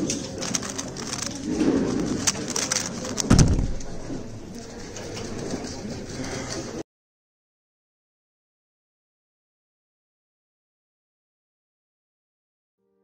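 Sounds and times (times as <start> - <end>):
speed cube clicking: 0.0 - 3.4.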